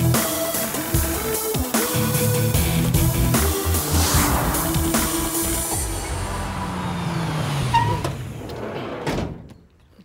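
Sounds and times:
van engine slowing to a stop: 4.6 - 9.0
brake squeal: 5.7 - 9.0.

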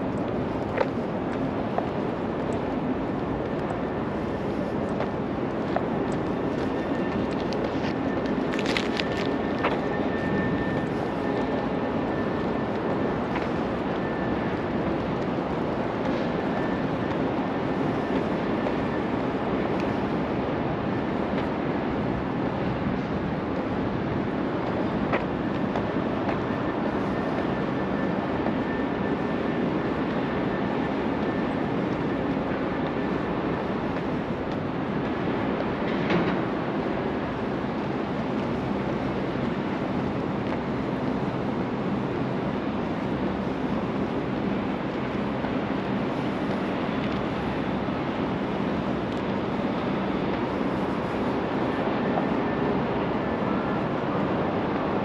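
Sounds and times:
city rumble: 0.0 - 55.0.

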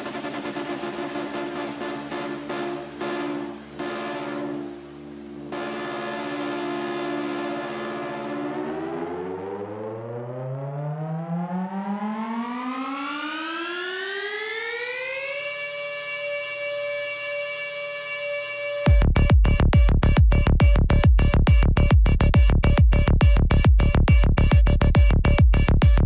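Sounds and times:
rising synth sweep: 0.0 - 16.4
held synthesizer chord: 0.0 - 26.0.

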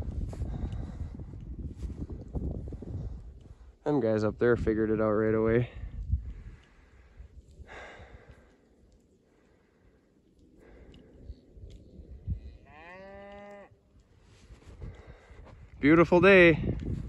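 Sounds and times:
cow mooing: 12.6 - 13.8.

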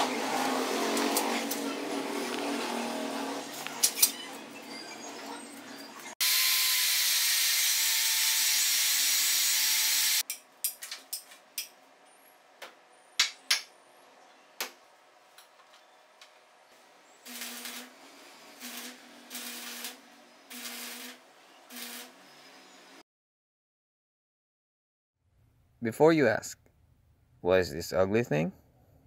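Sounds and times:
power tool cutting rebar: 0.0 - 3.6, 6.2 - 10.2, 17.2 - 17.9, 18.5 - 22.2.

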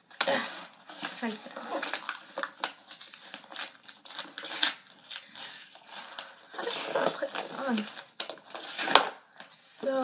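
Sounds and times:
packaging crinkling and tearing: 0.0 - 9.6.

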